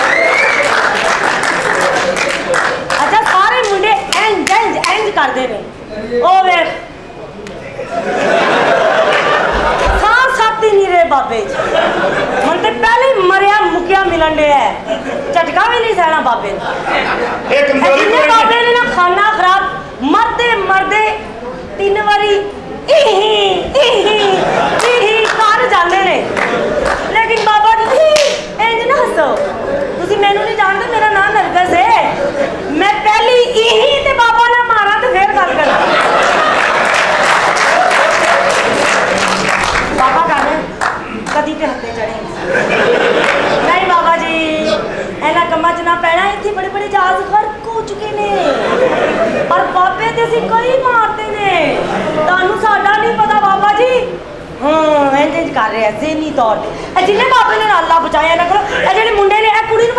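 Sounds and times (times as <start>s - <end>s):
audience applause and claps: 0.0s - 5.0s, 9.0s - 10.0s, 26.3s - 27.5s, 36.0s - 41.4s, 43.2s - 43.6s
woman talking in a raised voice: 9.8s - 11.5s.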